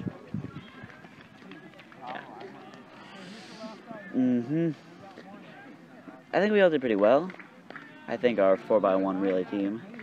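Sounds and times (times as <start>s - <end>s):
distant people talking and calling: 0.0s - 10.0s.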